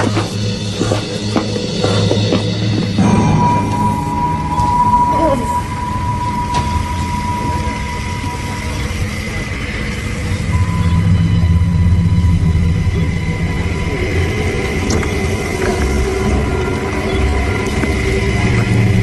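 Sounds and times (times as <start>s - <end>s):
low steady rumble: 3.0s - 16.9s
thin high sustained tones: 3.0s - 17.6s.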